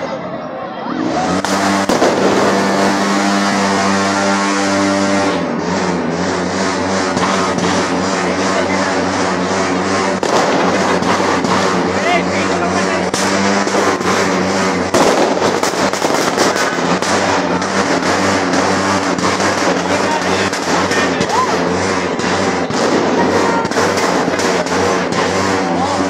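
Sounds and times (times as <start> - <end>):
fireworks bangs: 1.3 - 5.5, 6.2 - 25.8.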